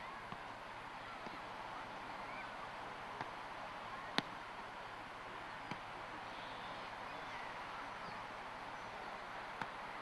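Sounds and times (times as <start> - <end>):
beach ambience hiss: 0.0 - 10.0.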